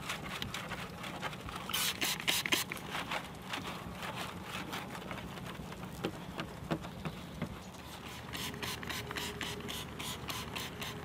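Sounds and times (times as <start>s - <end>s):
wash mitt rubbing wet car paint: 0.0s - 6.9s, 7.8s - 11.0s.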